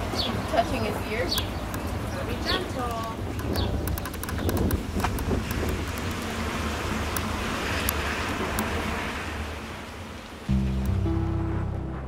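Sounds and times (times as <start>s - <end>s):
faint clicks: 2.8s - 6.2s
acoustic guitar music: 10.5s - 12.0s
low drone: 10.5s - 12.0s.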